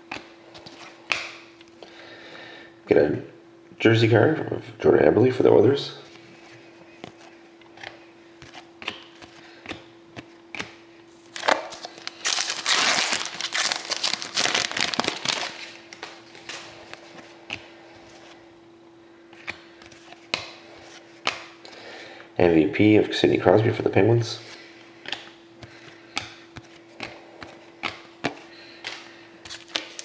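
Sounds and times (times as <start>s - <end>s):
faint steady hum: 0.0s - 30.0s
cardboard cards clicking and rustling: 7.0s - 18.4s, 25.1s - 30.0s
foil wrapper tearing and crinkling: 11.3s - 15.8s, 29.5s - 30.0s.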